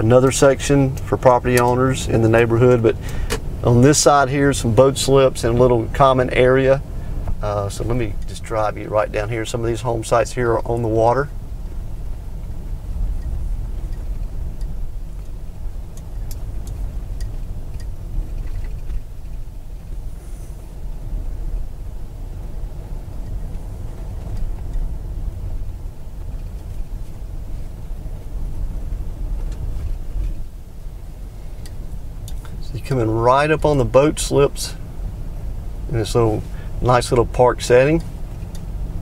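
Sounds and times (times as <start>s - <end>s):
car engine and tyres rumbling: 0.0s - 39.0s.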